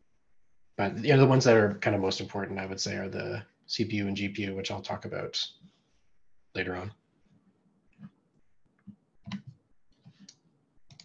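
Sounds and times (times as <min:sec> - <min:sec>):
faint irregular clicks: 0:07.2 - 0:11.0.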